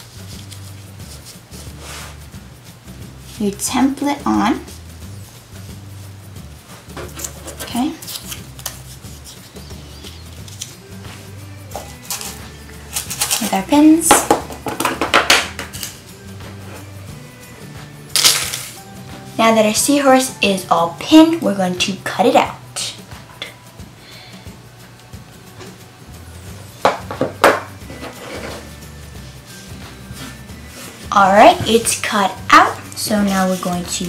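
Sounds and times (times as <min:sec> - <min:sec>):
hands rubbing paper: 0:00.0 - 0:02.4, 0:04.6 - 0:13.6, 0:27.9 - 0:31.2, 0:31.8 - 0:34.0
faint background music: 0:00.0 - 0:34.0.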